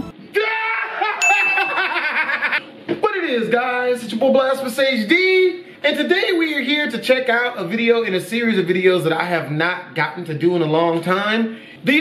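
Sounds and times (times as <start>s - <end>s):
man laughing: 0.8s - 2.6s
bell-like ding: 1.2s - 2.0s.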